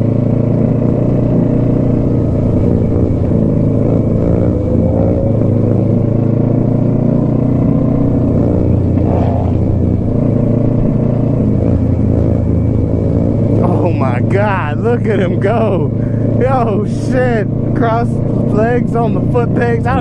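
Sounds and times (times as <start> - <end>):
motorcycle engine cruising: 0.0 - 20.0
person speaking: 13.5 - 20.0.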